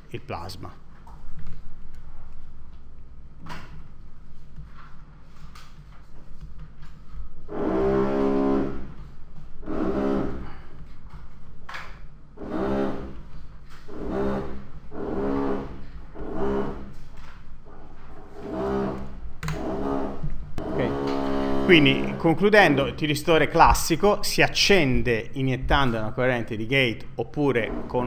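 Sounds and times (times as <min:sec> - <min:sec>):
machine drone bursts: 0:07.4 - 0:10.8, 0:12.4 - 0:17.0, 0:17.6 - 0:23.8.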